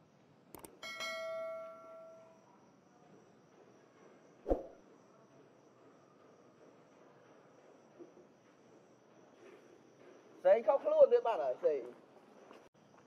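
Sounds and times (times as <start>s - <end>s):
click: 0.5s - 0.8s.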